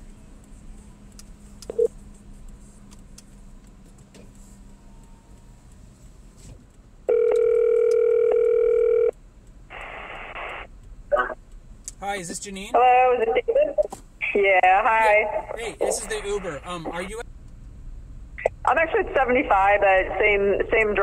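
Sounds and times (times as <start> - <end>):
phone ringback tone: 7.1 - 9.1.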